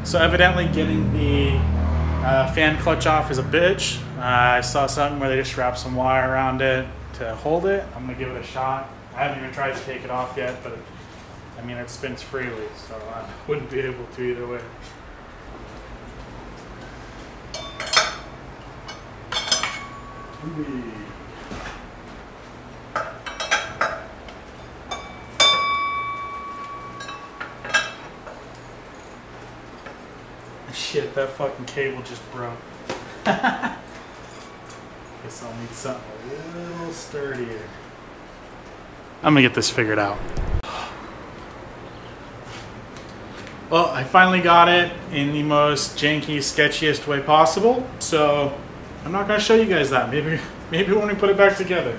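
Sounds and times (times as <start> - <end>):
low steady hum: 0.0 - 51.9
metal clinking: 17.5 - 20.6, 22.9 - 30.0
sharp metal clank: 18.9 - 20.4, 24.9 - 28.0.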